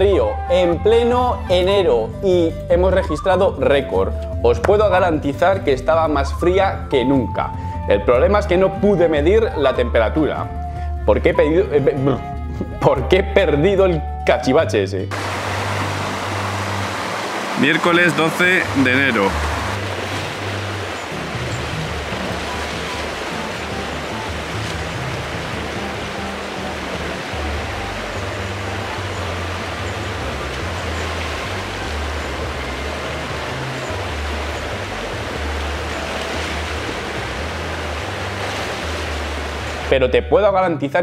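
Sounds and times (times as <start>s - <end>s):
background music with bass: 0.0s - 41.0s
river running over rocks: 15.1s - 39.9s.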